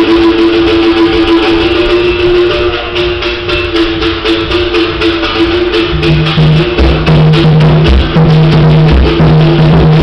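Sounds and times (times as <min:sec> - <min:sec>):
hand drum: 0:00.0 - 0:10.0.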